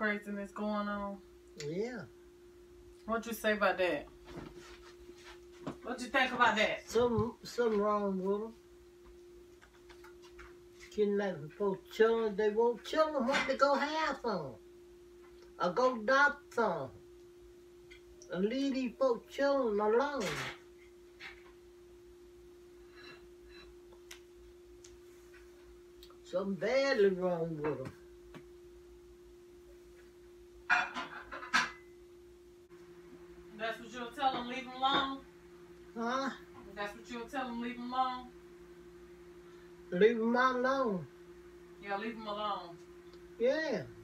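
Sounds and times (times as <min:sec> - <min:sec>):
low hum: 0:00.0 - 0:44.0.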